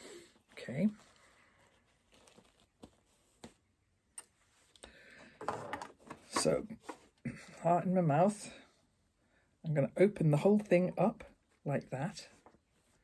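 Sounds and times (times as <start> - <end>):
fabric rustling: 0.2 - 4.8, 12.2 - 13.0
handling cushion cover: 0.4 - 3.9.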